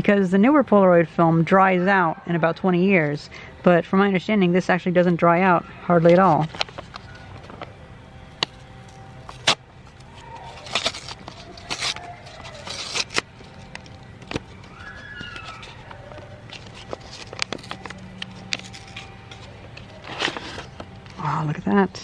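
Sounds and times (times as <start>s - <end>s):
foil pouch tearing and crinkling: 6.0s - 21.2s.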